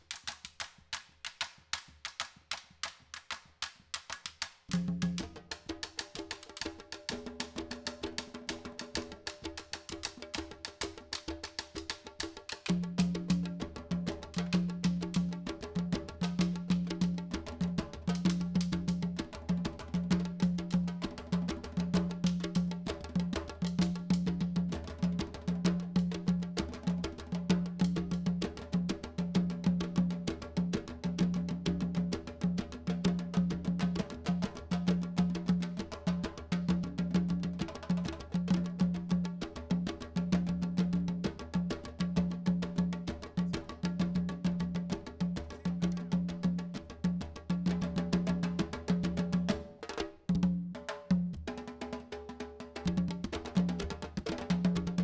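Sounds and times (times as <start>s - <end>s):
drum ensemble groove: 1.6s - 55.0s.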